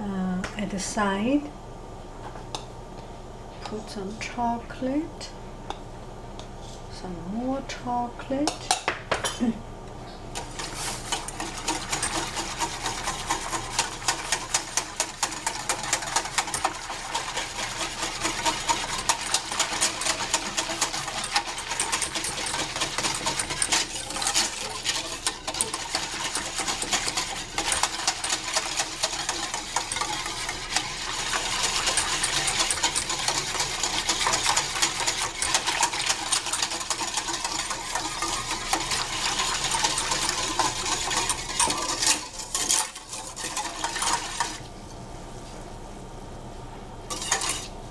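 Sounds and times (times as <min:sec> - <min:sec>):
utensil stirring in a pot: 0:10.4 - 0:44.8, 0:47.1 - 0:47.8.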